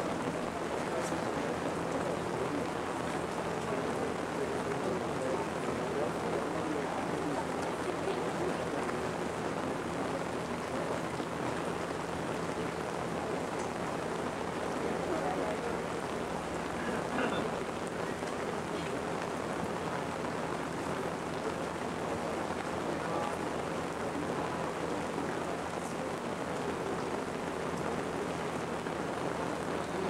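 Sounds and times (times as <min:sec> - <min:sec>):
low electrical hum: 0:00.0 - 0:30.0.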